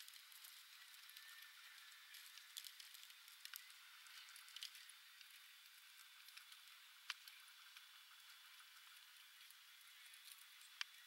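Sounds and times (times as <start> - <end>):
faint steady hiss: 0.0 - 11.0
soft ticks: 2.1 - 9.6.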